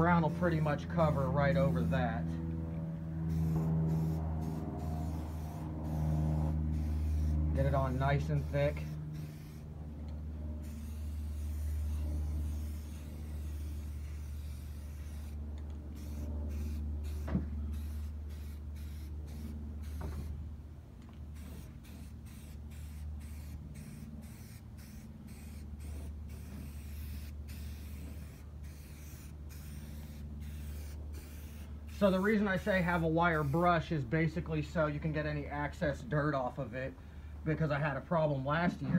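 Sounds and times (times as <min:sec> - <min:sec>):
steady low hum: 0:00.0 - 0:38.9
spray can hissing: 0:03.3 - 0:09.7, 0:10.6 - 0:15.4, 0:16.0 - 0:20.2, 0:21.3 - 0:33.7.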